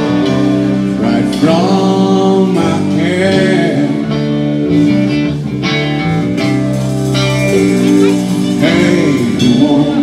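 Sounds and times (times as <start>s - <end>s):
bass line: 0.0s - 10.0s
drums at a steady beat: 0.0s - 10.0s
electric guitar: 0.0s - 10.0s
keyboard: 0.0s - 10.0s
person singing: 1.0s - 4.2s, 7.3s - 10.0s.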